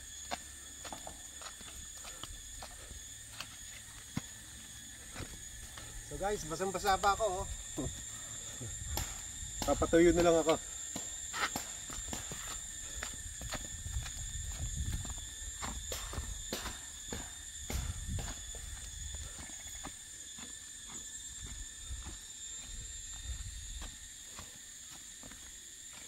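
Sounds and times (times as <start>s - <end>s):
footsteps on a trail: 0.0s - 26.0s
insects droning: 0.0s - 26.0s.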